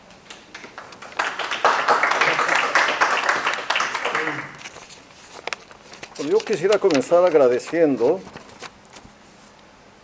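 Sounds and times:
audience applauding: 0.3s - 4.7s.

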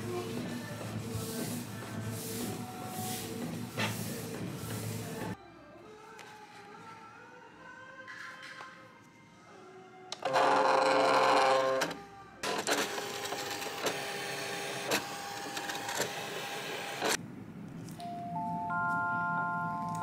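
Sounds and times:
cutting machine motor whirring: 12.6s - 17.2s
glockenspiel-like chime tune: 18.0s - 20.0s.

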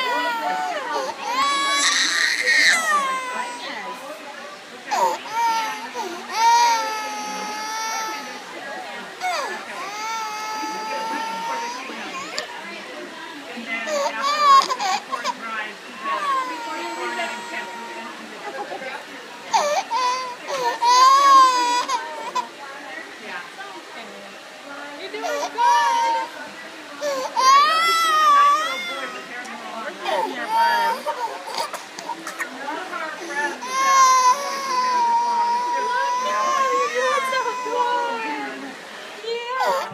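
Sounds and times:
infant wailing: 0.0s - 4.0s, 4.9s - 8.5s, 9.2s - 12.5s, 16.0s - 18.1s, 27.0s - 29.3s, 33.2s - 38.6s, 39.6s - 39.9s
toddler crying: 0.0s - 4.0s, 4.9s - 8.5s, 9.2s - 12.5s, 16.0s - 18.1s, 19.5s - 22.5s, 25.2s - 26.4s, 27.0s - 29.3s, 30.0s - 32.5s, 33.2s - 38.6s, 39.6s - 39.9s.

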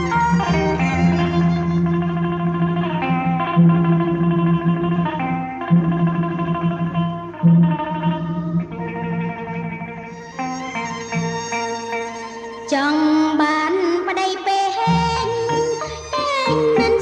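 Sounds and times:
instrumental music with echo: 0.0s - 17.0s.

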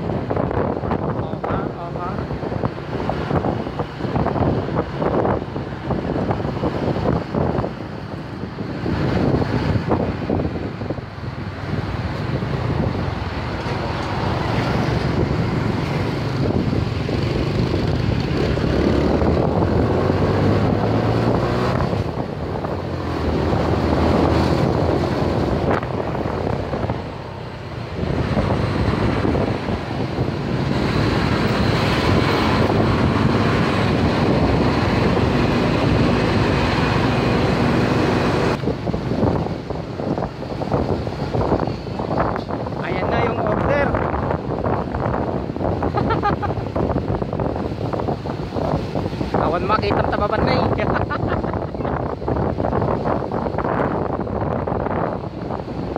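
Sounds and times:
passing road traffic: 0.0s - 55.9s
wind rushing over microphone: 0.0s - 55.9s.

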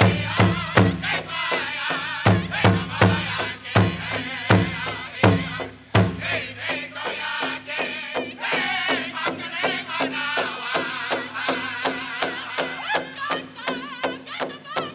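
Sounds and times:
big drum beating: 0.0s - 14.9s
voices singing high wavering chant: 0.0s - 14.9s.

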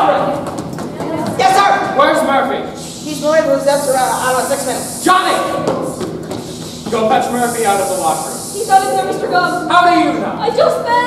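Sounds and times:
actors speaking: 0.0s - 11.0s
steady high hiss: 1.4s - 11.0s.

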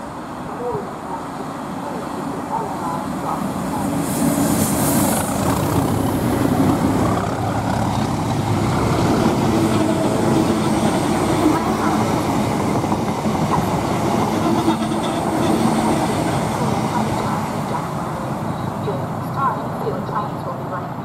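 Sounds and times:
train wheels rumbling on rails: 1.6s - 20.9s
clickety-clack over rail joints: 5.1s - 18.0s.

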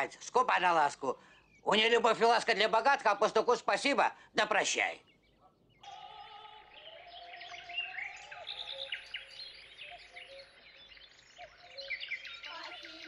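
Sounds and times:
songbirds chirping and trilling: 0.0s - 13.0s.

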